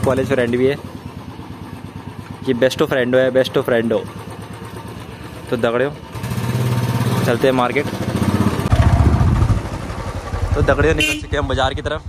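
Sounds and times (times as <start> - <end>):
motorcycle engine pulling away: 0.0 - 11.0.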